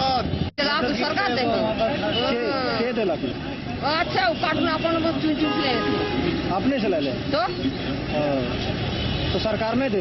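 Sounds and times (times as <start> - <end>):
roadside traffic noise: 0.0 - 10.0.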